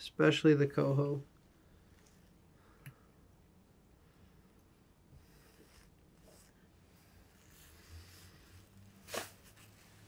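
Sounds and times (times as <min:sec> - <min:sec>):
faint rustling of materials: 0:00.0 - 0:10.0.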